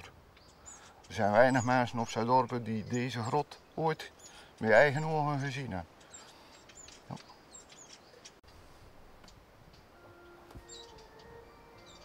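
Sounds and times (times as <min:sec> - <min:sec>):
high bird chirps: 0:09.3 - 0:12.0
soft music: 0:09.8 - 0:12.0.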